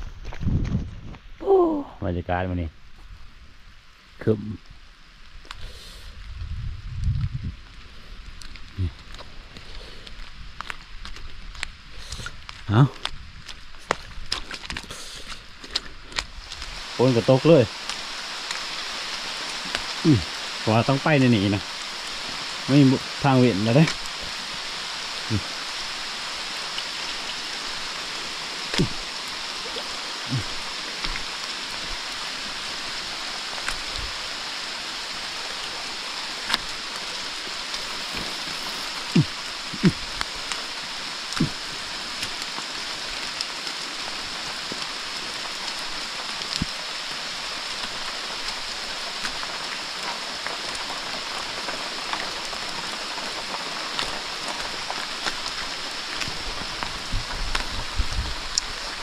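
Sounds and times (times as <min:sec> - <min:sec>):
rain falling on rocks and leaves: 0:00.0 - 0:59.0
footsteps in flip-flops on wet rocks: 0:08.4 - 0:16.9, 0:47.7 - 0:59.0.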